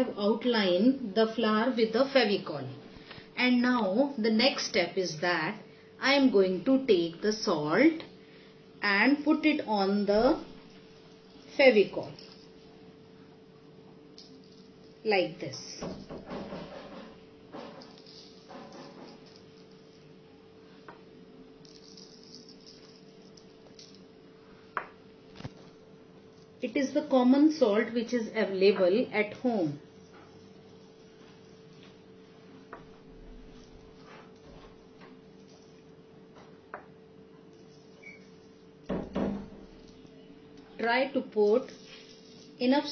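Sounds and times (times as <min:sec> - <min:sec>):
faint steady hum: 0:00.0 - 0:42.9.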